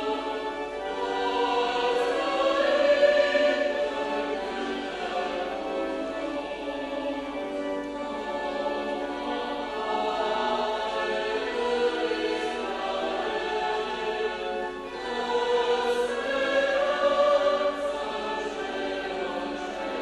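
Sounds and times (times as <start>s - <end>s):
church choir singing a hymn: 0.0s - 20.0s.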